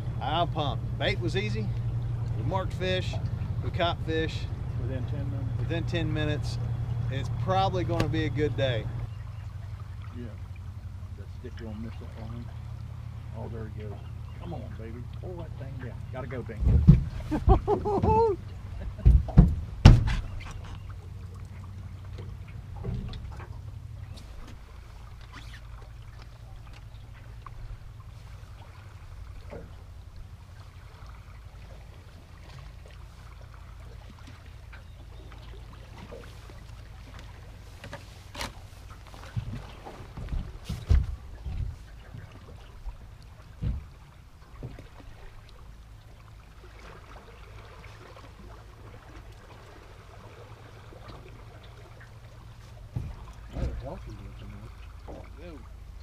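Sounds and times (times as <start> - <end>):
river water: 0.0 - 56.0
wind: 0.0 - 56.0
knocks and bumps on boat: 5.4 - 9.2, 15.7 - 25.6, 28.5 - 30.4, 34.2 - 45.4, 51.0 - 56.0.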